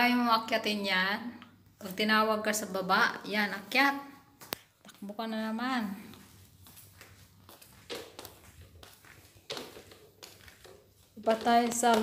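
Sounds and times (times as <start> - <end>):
footsteps on a staircase: 5.8 - 12.0.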